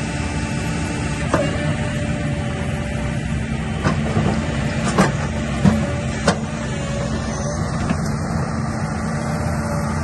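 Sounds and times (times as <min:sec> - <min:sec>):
excavator running: 0:00.0 - 0:10.0.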